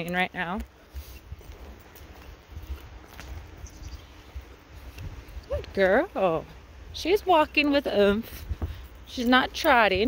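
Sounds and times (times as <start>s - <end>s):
hoof footfalls on grass: 0.0s - 10.0s.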